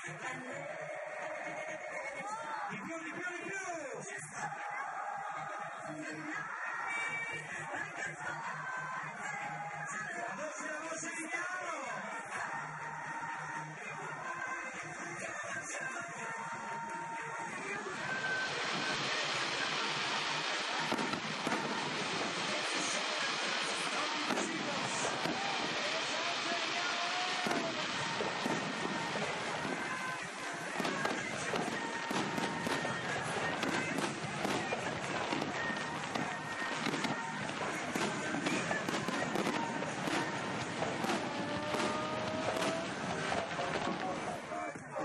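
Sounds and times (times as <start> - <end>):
music: 0.0 - 45.0
fireworks rumble and crackle: 5.3 - 45.0
fireworks bangs: 14.8 - 44.9.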